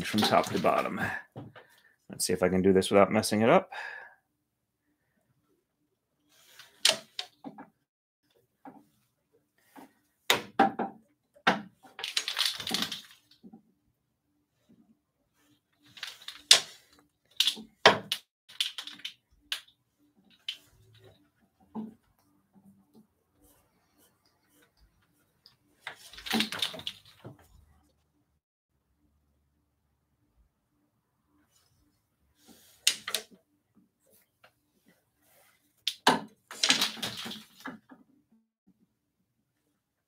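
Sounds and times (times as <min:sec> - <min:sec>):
wooden bobbins clacking: 0:00.0 - 0:00.9, 0:06.6 - 0:07.8, 0:09.7 - 0:13.6, 0:15.8 - 0:23.1, 0:24.5 - 0:27.6, 0:32.8 - 0:33.4, 0:35.8 - 0:38.2.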